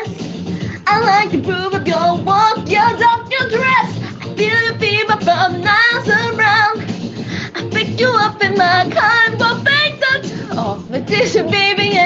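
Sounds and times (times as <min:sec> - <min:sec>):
music: 0:00.0 - 0:12.0
woman singing with vibrato: 0:00.8 - 0:06.9, 0:07.5 - 0:12.0.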